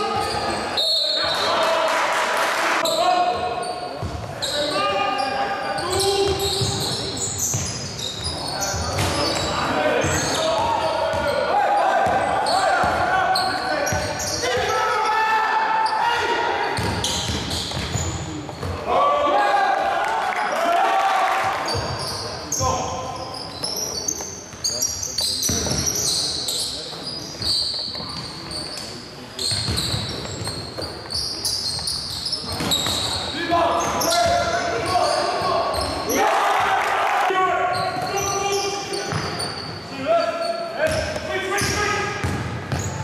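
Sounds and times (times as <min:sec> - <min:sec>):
shoes squeaking: 0:02.8 - 0:14.8, 0:21.7 - 0:36.1, 0:37.6 - 0:43.0
basketball bouncing on court: 0:06.2 - 0:11.3, 0:12.0 - 0:13.1, 0:16.8 - 0:18.8, 0:29.5 - 0:30.9, 0:40.9 - 0:43.0.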